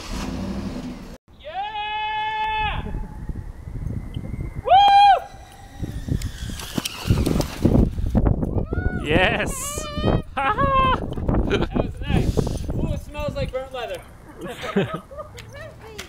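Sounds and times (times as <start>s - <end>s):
high whooping cries: 4.6s - 7.3s, 8.6s - 11.1s.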